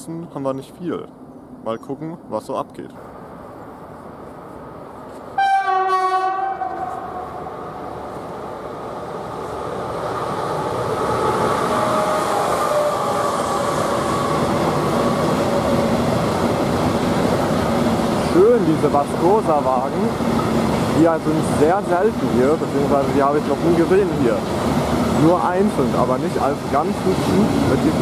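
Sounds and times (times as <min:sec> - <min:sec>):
freight train passing: 0:00.0 - 0:28.0
locomotive horn blast: 0:05.4 - 0:07.3.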